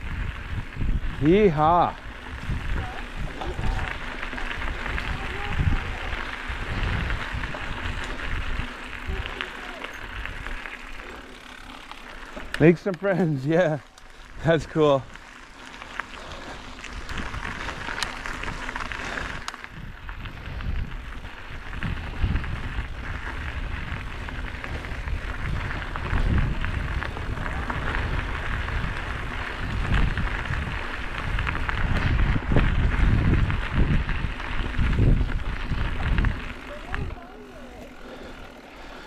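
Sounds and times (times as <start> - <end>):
wind on microphone: 0.0 - 10.6, 16.9 - 39.0
bike rattles and clicks: 0.0 - 39.0
bike tyres rolling on gravel: 0.0 - 39.0.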